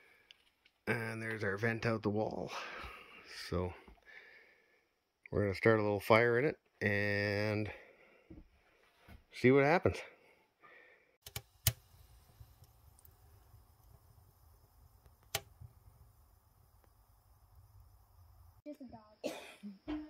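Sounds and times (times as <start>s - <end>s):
fire burning with low rumble: 11.2s - 18.7s
fire popping: 11.2s - 18.7s.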